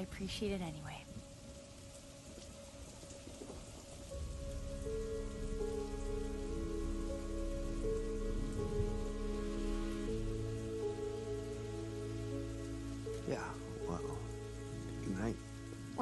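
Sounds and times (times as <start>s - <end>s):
soft music of long held notes: 0.0s - 16.0s
steady rain falling: 0.0s - 16.0s
deep bass note: 4.2s - 11.2s.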